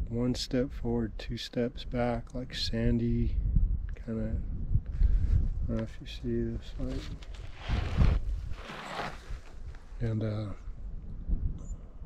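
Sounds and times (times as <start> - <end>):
rustling scraping noises: 6.6 - 10.0.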